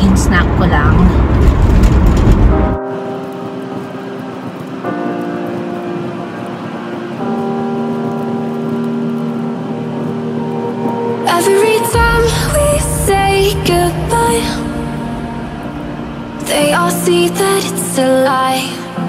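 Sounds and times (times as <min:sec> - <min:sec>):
car cabin road and engine noise: 0:00.0 - 0:02.8
sustained held chords: 0:02.5 - 0:19.0
pop song: 0:11.2 - 0:19.0.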